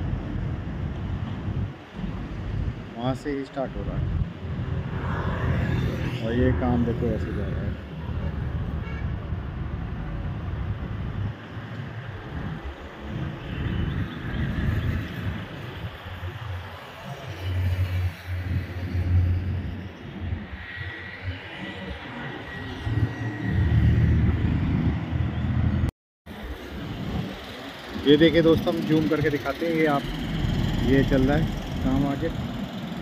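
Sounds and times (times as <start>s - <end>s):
road traffic passing: 0.0s - 33.0s.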